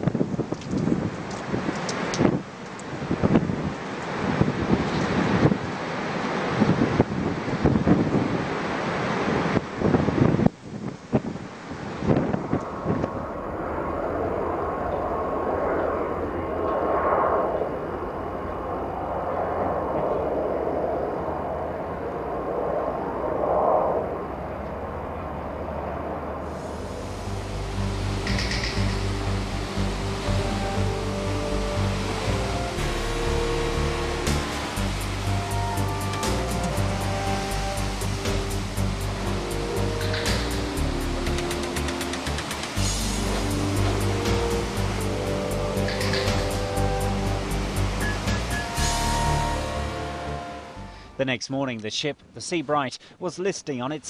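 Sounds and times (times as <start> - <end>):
waves breaking on shore: 0.0 - 16.6, 24.3 - 50.8
rushing wind: 0.0 - 51.2
background music with steady beat: 27.1 - 51.0.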